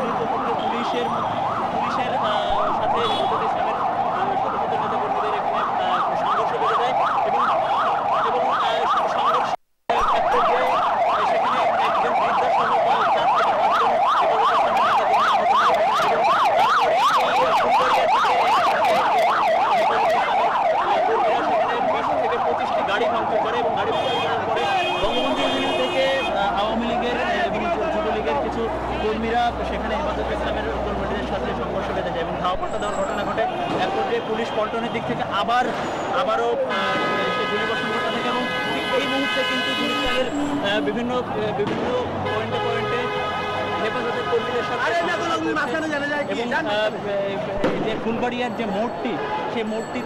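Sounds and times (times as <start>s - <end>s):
emergency siren yelping: 0.0s - 47.5s.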